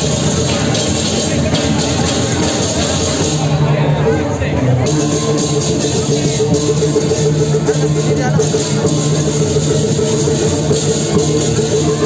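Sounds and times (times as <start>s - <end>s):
crowd din: 0.0s - 12.0s
gamelan percussion music: 0.0s - 12.0s.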